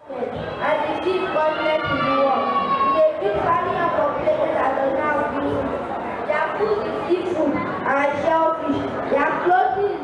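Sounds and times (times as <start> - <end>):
child speaking into a microphone: 0.0 - 10.0.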